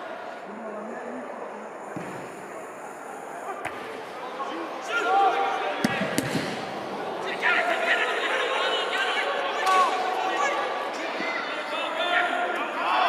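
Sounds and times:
players shouting: 3.4 - 13.0.

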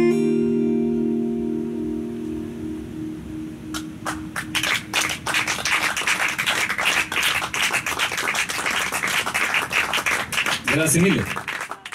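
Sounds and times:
acoustic guitar and dobro chord: 0.0 - 4.4
audience applauding: 4.0 - 11.9.

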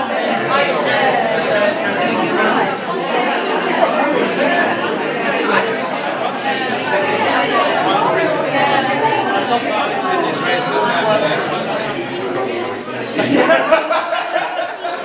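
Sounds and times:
indistinct chatter of many people: 0.0 - 15.0.

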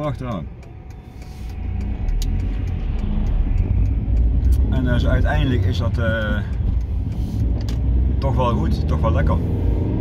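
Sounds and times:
car engine: 0.0 - 10.0
road rumble: 0.0 - 10.0.

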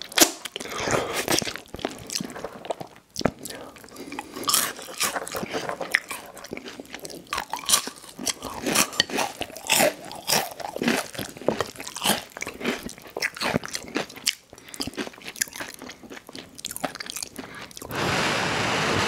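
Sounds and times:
close chewing with wet crunches: 0.0 - 17.9.

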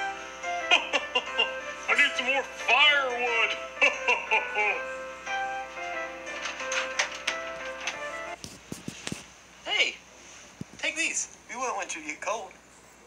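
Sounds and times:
music with voice from phone: 1.8 - 3.8
clicks: 6.3 - 9.2.

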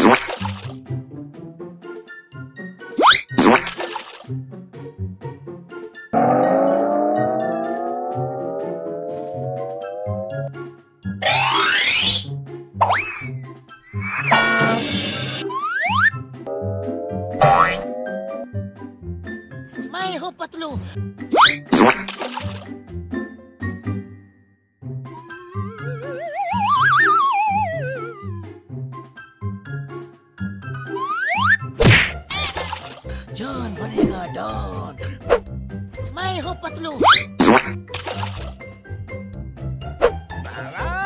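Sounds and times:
upbeat children's music: 0.0 - 41.0
rising sliding sweep: 6.2 - 10.5
springy boing: 6.2 - 10.5, 16.5 - 18.4
rising cartoon whistle: 15.4 - 16.2, 25.1 - 28.5, 30.9 - 31.7
warbling high-pitched squeal: 25.2 - 28.4
loud whack: 31.8 - 32.9.

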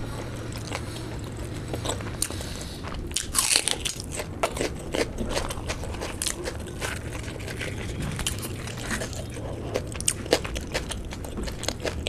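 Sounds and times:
crunchy chewing: 0.0 - 12.0
onion crunching when bitten: 0.3 - 12.0.

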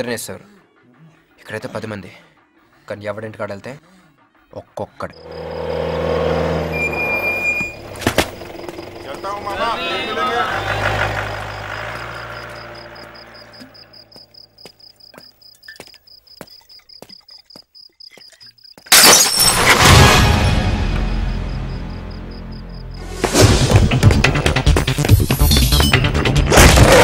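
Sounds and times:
crickets chirping: 5.1 - 18.9, 21.2 - 23.0
person calling out: 9.4 - 11.0
footsteps on wet stone: 14.2 - 18.9.

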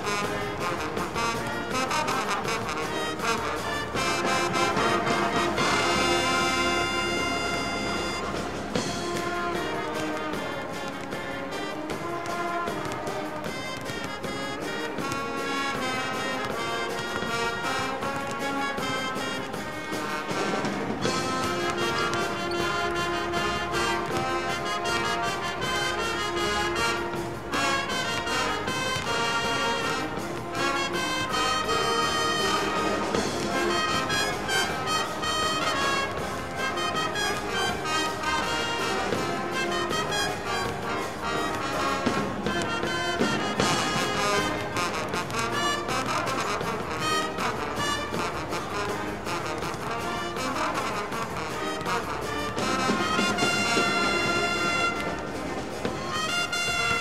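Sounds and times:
brass band playing: 0.0 - 57.0
drums keeping steady beat: 0.0 - 57.0.

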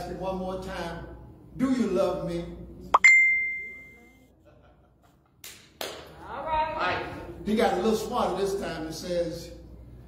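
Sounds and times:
metallic ding: 3.0 - 4.0.

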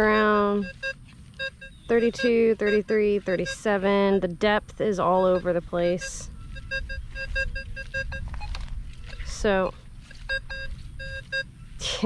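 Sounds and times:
metal detector beeps: 0.0 - 11.9.

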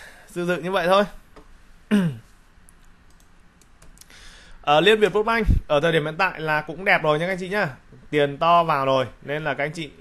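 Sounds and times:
mouse clicks: 2.6 - 4.1
computer keyboard clicks: 2.7 - 4.1.

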